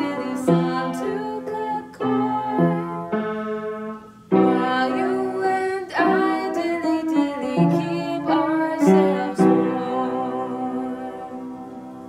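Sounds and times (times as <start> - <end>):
piano notes ringing: 0.0 - 12.0.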